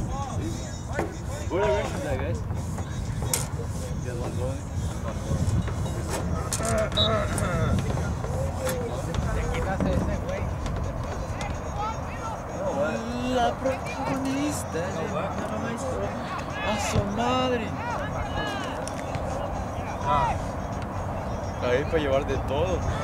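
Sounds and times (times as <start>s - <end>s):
distant voices calling and talking: 0.0s - 23.0s.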